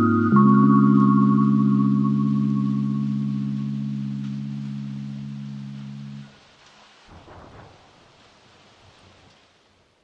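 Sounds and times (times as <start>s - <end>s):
held low chord: 0.0s - 6.3s.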